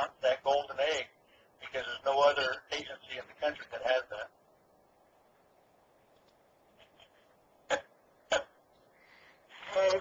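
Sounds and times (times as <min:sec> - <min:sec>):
man speaking: 0:00.0 - 0:04.4, 0:09.6 - 0:10.0.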